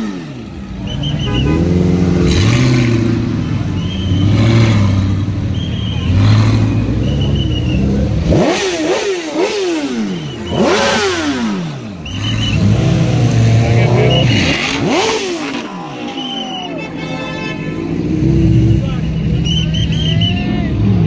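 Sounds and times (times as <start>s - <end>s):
sports car engine revving: 0.0s - 16.0s
crowd chatter: 0.0s - 21.0s.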